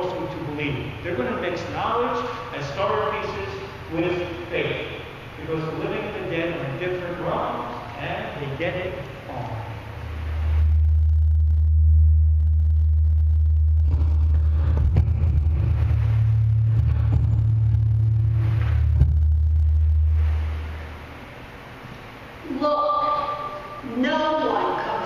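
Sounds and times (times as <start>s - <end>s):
low rumbling drone: 0.0s - 23.9s
higher low tone: 9.3s - 21.6s.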